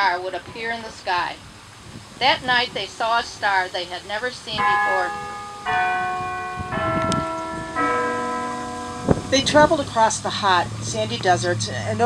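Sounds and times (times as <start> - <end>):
bells ringing: 2.2 - 12.0.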